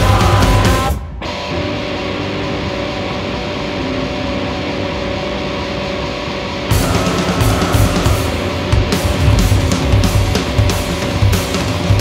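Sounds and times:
distorted electric guitars droning: 0.0 - 12.0.

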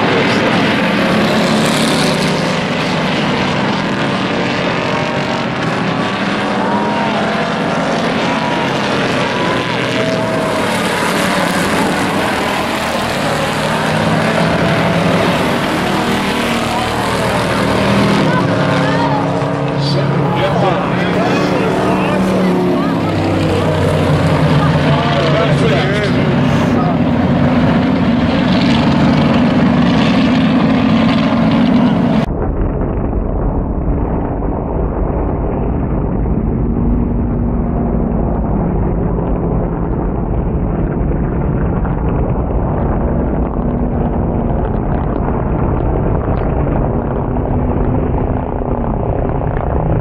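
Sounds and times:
race car engines: 0.0 - 32.8, 34.0 - 50.0.

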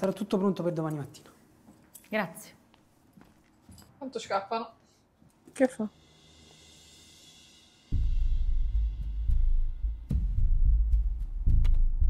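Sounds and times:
deep bass thuds: 8.0 - 12.0.

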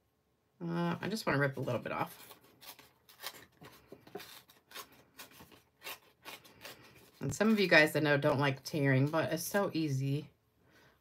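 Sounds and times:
cardstock tearing: 1.6 - 7.6.

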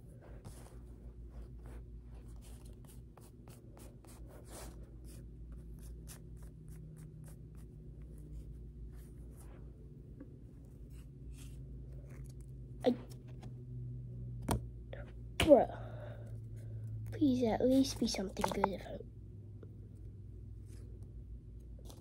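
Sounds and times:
steady low hum: 0.0 - 22.0
trading cards rustling: 17.6 - 18.9.

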